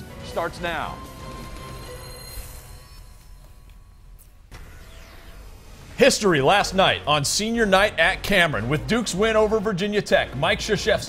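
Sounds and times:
low hum: 1.0s - 9.6s.

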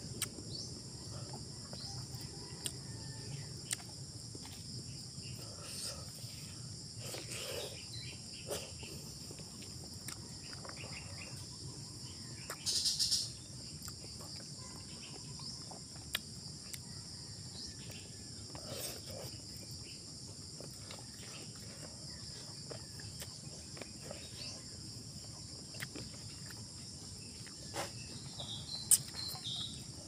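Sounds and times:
insects chorus: 0.0s - 30.0s
eating by hand clicks and smacks: 25.7s - 26.7s, 27.4s - 29.7s.

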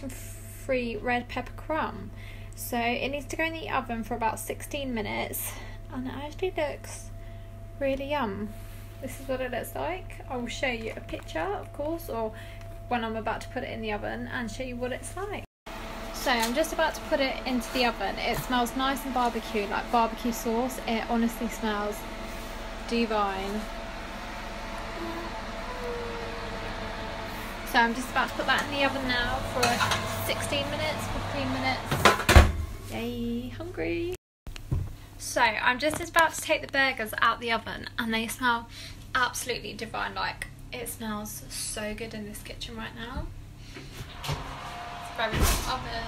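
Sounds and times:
faint steady hum: 0.0s - 15.4s
fan-like hum: 0.0s - 46.0s
low buzz: 3.7s - 33.0s.

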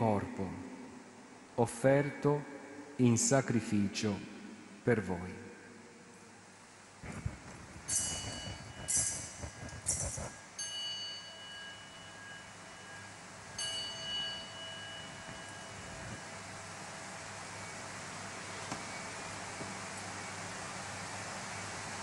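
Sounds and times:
altar bell ringing: 7.9s - 9.9s, 10.5s - 16.8s.

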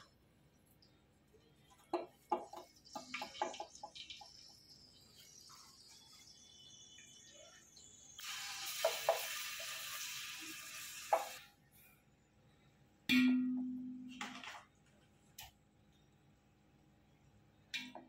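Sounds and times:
hiss: 8.2s - 11.4s.

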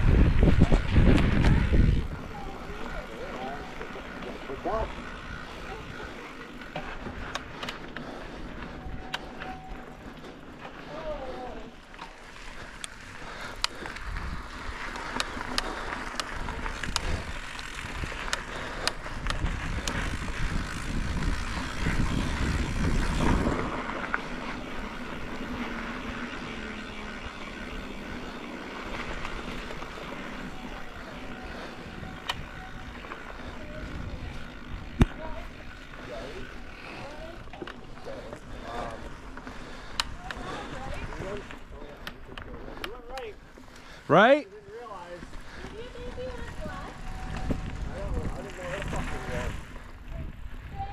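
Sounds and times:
bike tyres and frame rumbling: 0.0s - 50.9s
bike clicks and knocks: 0.3s - 2.5s, 6.2s - 10.8s, 11.9s - 30.6s, 32.0s - 35.5s, 36.7s - 40.9s.

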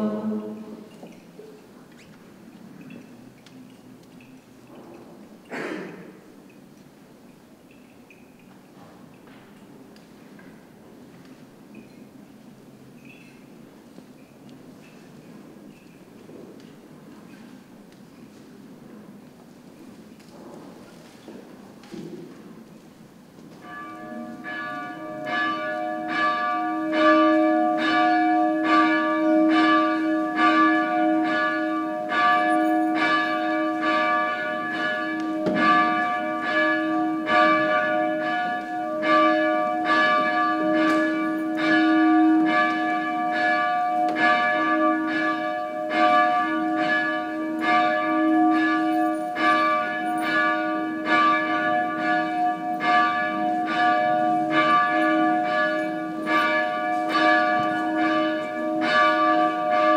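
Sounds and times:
church bells ringing: 0.0s - 1.1s, 23.4s - 59.9s.

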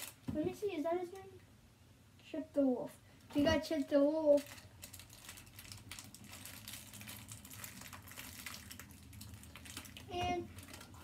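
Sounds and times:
packaging crinkling: 0.0s - 0.3s, 3.6s - 11.0s.

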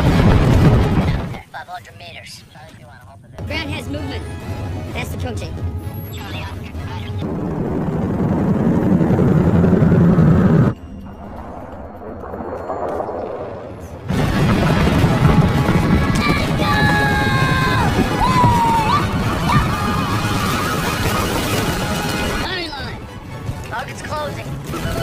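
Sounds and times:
rumbling battle effects: 0.0s - 1.4s, 7.2s - 22.5s
dramatic film score: 2.1s - 25.0s
sliding pitched tones: 7.2s - 16.7s.

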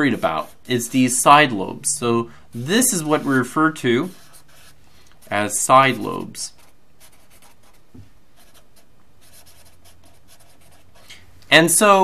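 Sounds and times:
marker scratching on paper: 0.0s - 1.2s, 2.5s - 11.1s.

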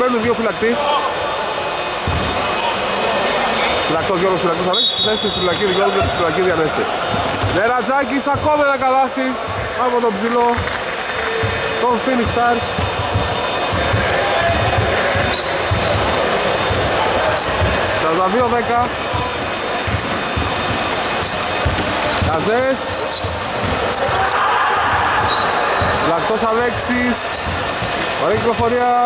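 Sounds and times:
players' voices: 0.0s - 29.0s
basketball bouncing on wooden floor: 2.1s - 2.4s, 8.3s - 8.6s, 10.5s - 29.0s.

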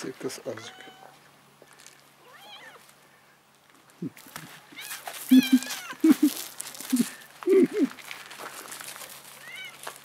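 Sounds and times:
cat meowing: 0.6s - 1.2s, 2.2s - 2.8s, 4.8s - 6.0s, 9.4s - 9.8s.

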